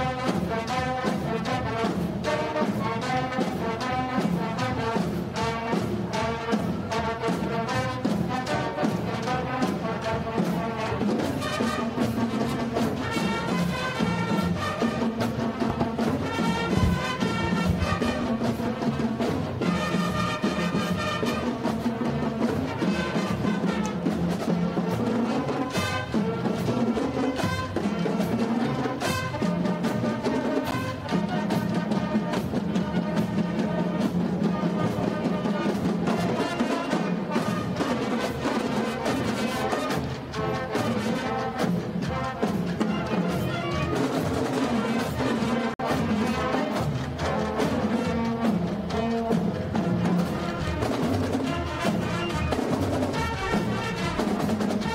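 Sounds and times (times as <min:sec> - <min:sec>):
drumline beat: 0:00.0 - 0:54.9
marching band brass: 0:00.0 - 0:54.9.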